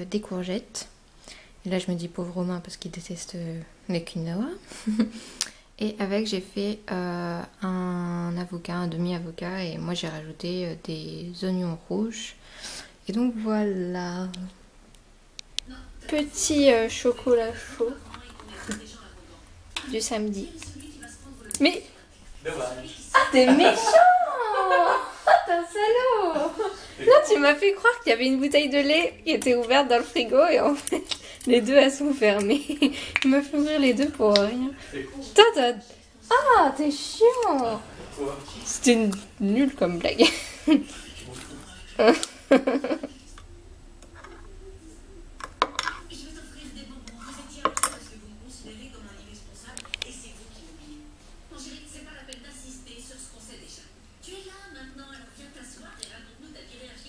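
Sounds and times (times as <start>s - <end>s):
faint low hum: 0.0s - 57.0s
person speaking: 21.5s - 42.2s.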